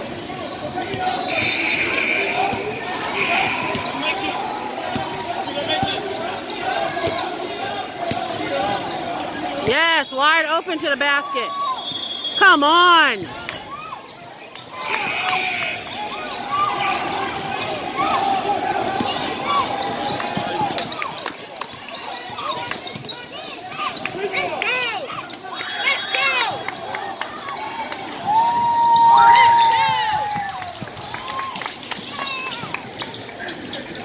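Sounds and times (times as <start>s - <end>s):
sneakers squeaking: 0.1s - 9.8s, 10.4s - 24.5s, 32.0s - 34.0s
people calling out: 12.4s - 13.8s.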